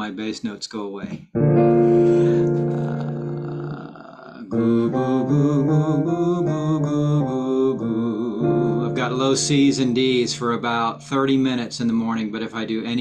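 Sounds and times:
man singing with vibrato: 2.2s - 11.7s.

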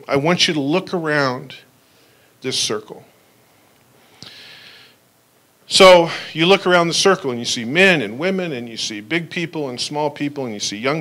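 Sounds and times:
man breathing in: 4.0s - 5.0s.

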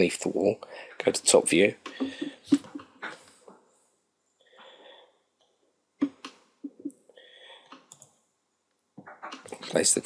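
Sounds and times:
faint computer mouse clicks: 7.7s - 8.2s.

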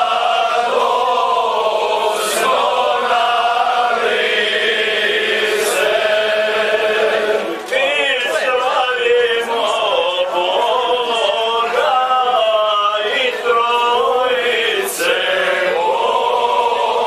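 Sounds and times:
man singing with held notes: 0.0s - 17.0s.

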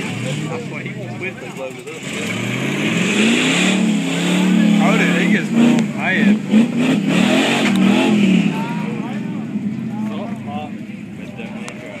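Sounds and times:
onlookers chattering: 0.0s - 12.0s.

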